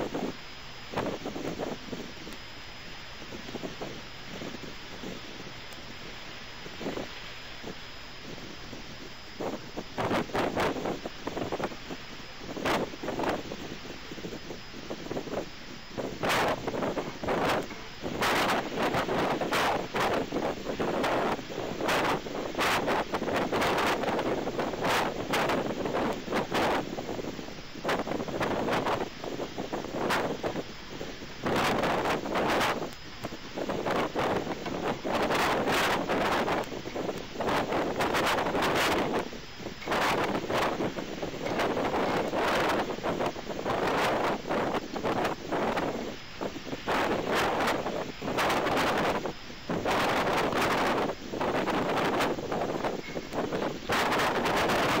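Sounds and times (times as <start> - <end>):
wind gusting on microphone: 0.0 - 55.0.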